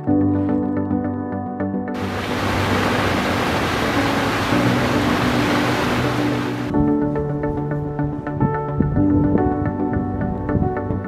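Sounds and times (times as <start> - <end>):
background music: 0.0 - 11.0
water rushing over rocks: 2.0 - 6.7.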